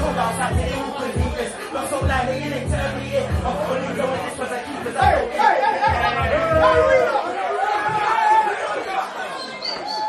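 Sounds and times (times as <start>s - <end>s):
crowd chatter: 0.0s - 10.0s
men talking and calling out: 3.6s - 10.0s.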